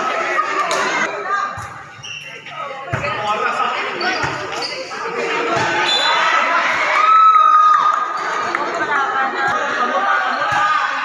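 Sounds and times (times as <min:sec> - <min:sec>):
chatter of people: 0:00.0 - 0:11.0.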